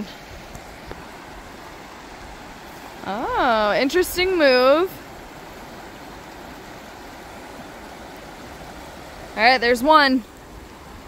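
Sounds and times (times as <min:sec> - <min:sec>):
river rushing over riffles: 0:00.0 - 0:11.0.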